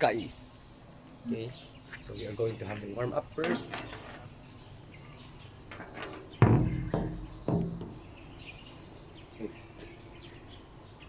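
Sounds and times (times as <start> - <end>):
dull thumps on concrete: 6.4 - 8.0.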